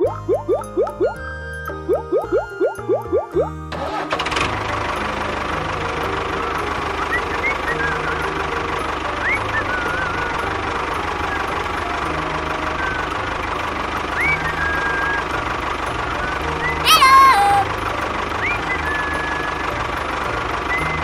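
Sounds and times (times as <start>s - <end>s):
bouncy plucked music: 0.0s - 21.0s
tractor engine running: 0.0s - 21.0s.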